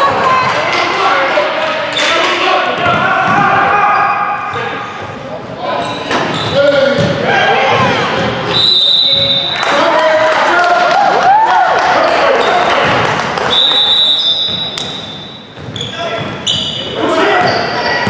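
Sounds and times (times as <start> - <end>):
sneakers squeaking: 1.6 - 9.6, 12.0 - 18.0
ball bouncing on wooden court: 6.4 - 8.4, 14.4 - 16.6.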